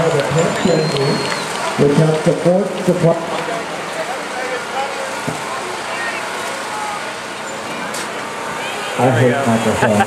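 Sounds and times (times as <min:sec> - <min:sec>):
crowd and street noise: 0:00.0 - 0:10.0
distant voices: 0:00.0 - 0:10.0.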